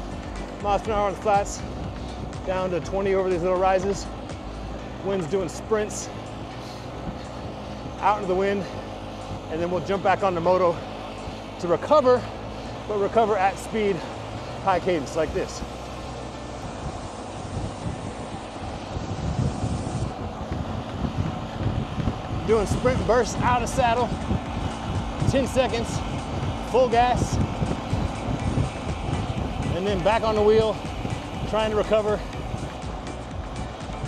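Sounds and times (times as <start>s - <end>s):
background music: 0.0s - 34.0s
road noise: 0.0s - 34.0s
wind buffeting microphone: 0.0s - 34.0s.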